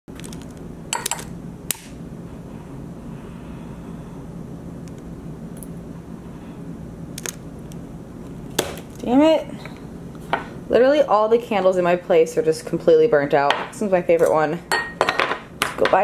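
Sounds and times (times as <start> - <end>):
steady low hum: 0.1 - 16.0.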